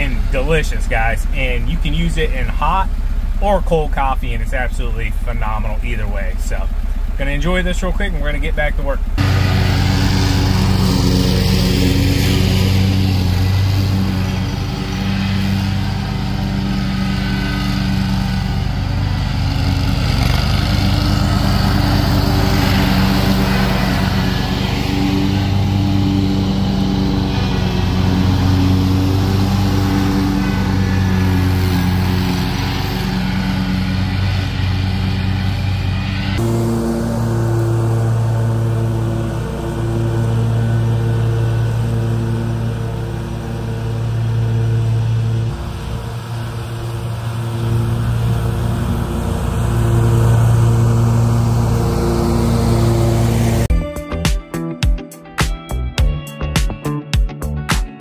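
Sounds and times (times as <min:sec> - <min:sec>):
mower engines running: 0:00.0 - 0:53.7.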